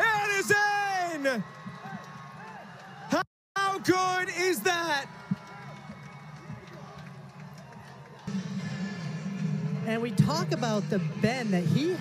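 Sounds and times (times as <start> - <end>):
music playing: 5.2 - 12.0.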